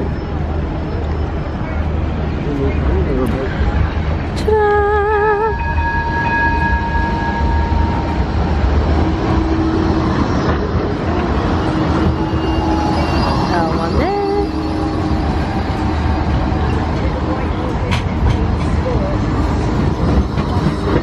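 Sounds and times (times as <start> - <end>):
tram rumbling past: 0.0 - 21.0.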